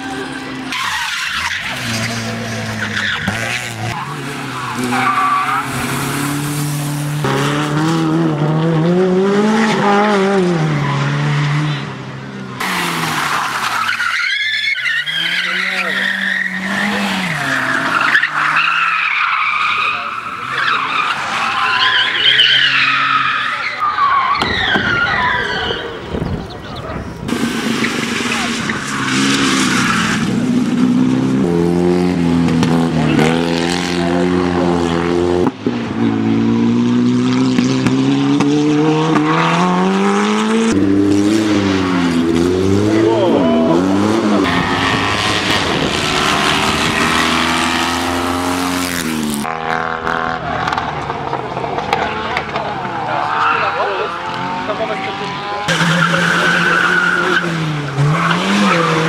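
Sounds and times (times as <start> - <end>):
rally car engines revving: 0.0 - 59.0
tyres squealing: 0.6 - 6.4, 12.6 - 26.9, 51.5 - 59.0.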